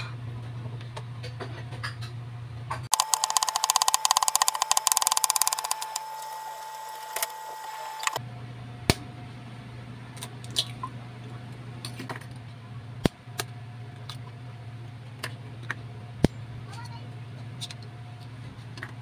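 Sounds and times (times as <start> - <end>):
steady high hum: 2.9 - 11.9.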